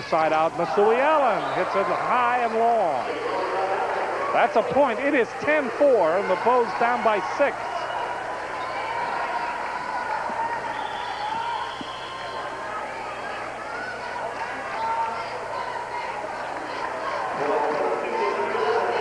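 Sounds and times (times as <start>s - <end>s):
crowd chattering and calling out: 0.0s - 19.0s.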